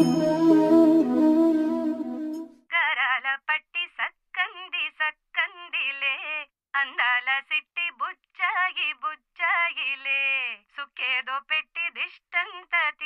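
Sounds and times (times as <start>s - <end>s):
instrumental music with sustained tones: 0.0s - 2.6s.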